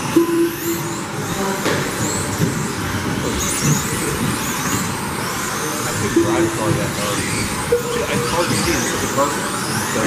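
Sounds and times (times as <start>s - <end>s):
rc car motors whining: 0.0s - 10.0s
steady noisy din: 0.0s - 10.0s.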